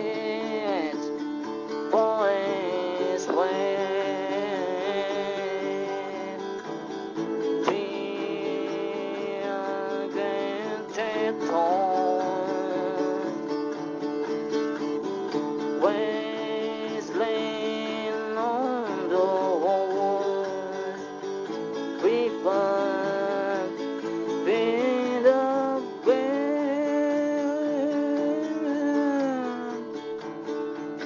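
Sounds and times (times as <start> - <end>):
guitar chords: 0.0 - 31.0.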